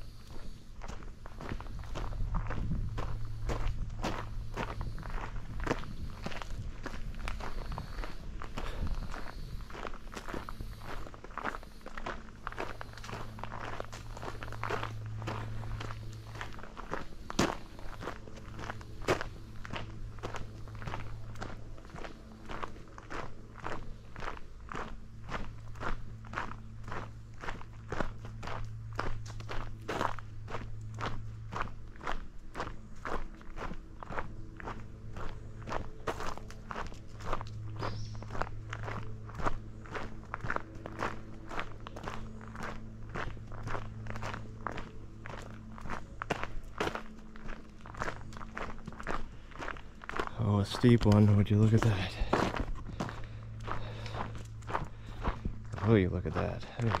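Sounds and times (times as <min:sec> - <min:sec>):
footsteps on gravel: 0:00.0 - 0:57.0.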